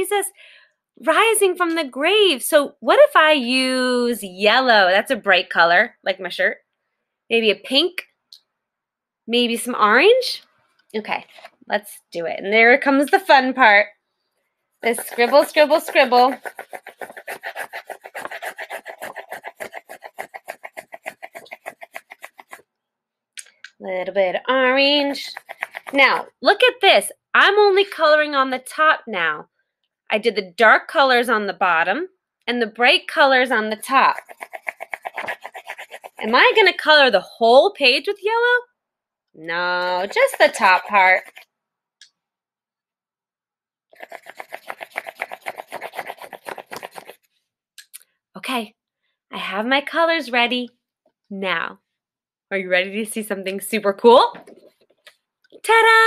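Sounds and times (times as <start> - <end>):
scribbling on paper: 14.8 - 22.6, 25.0 - 26.3, 33.6 - 36.8, 39.8 - 41.4, 44.0 - 47.3.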